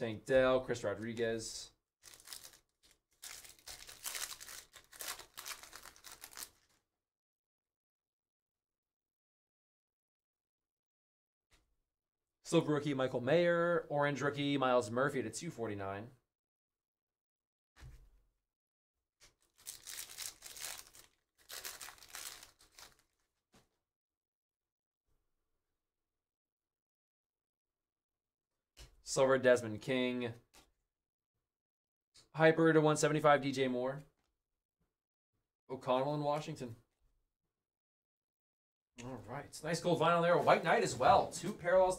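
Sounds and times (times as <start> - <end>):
foil wrapper tearing and crinkling: 2.0 - 6.8, 19.4 - 23.3.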